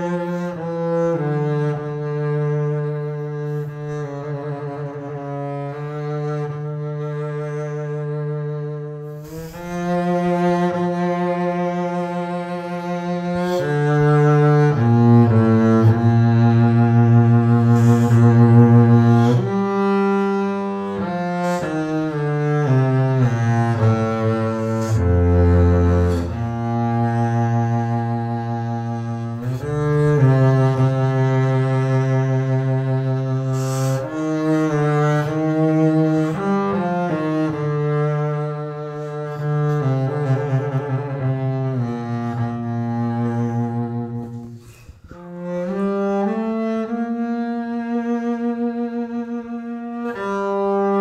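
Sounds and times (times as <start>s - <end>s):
bowed double bass melody: 0.0s - 51.0s.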